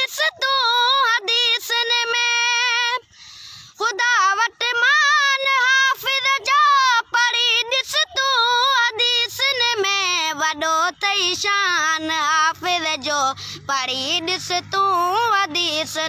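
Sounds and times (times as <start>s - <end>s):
boy singing: 0.0s - 16.0s.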